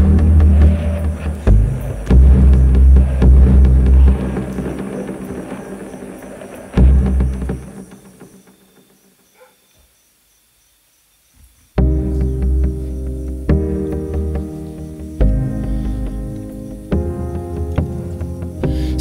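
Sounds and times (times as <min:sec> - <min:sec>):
electronic music with deep bass: 0:00.0 - 0:08.3, 0:11.8 - 0:19.0.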